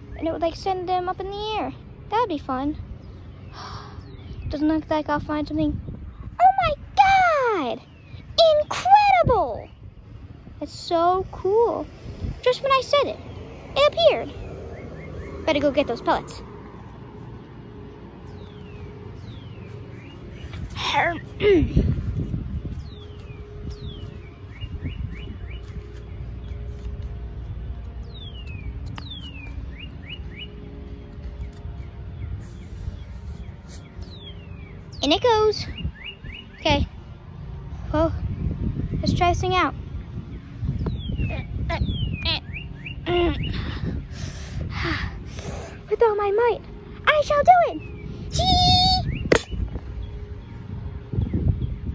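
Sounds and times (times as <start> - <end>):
birds chirping: 0.0 - 51.9
low rumble on microphone: 2.7 - 42.4.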